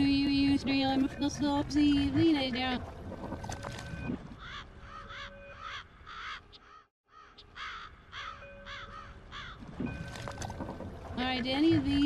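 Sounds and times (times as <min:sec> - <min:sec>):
seagulls crying: 0:04.3 - 0:09.6.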